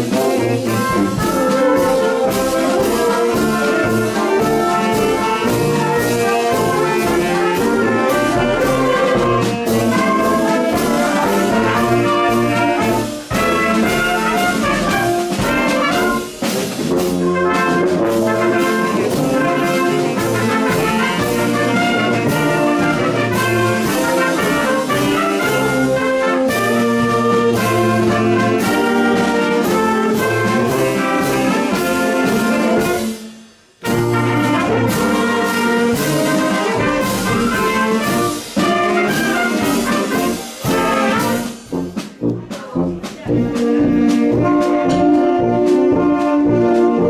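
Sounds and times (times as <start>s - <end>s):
marching band playing: 0.0s - 47.0s.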